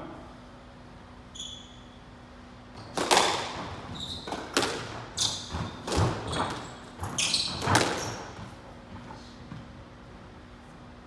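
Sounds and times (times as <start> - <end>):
squash ball hits echoing: 2.8 - 8.6.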